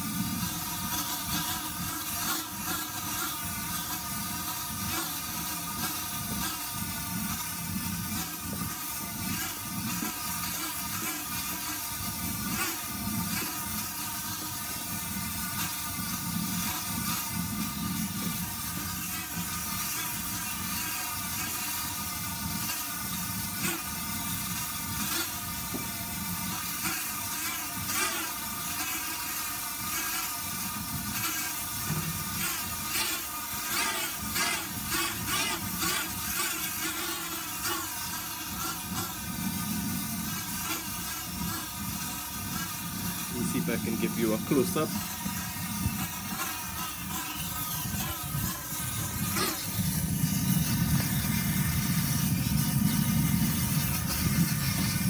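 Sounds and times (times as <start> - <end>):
wavering hum: 0.0 - 55.0.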